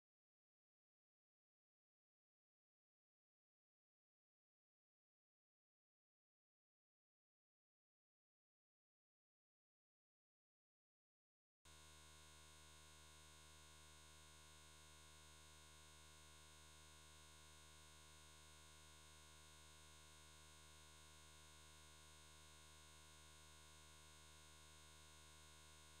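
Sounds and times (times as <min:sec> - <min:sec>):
faint steady tone: 0:11.7 - 0:26.0.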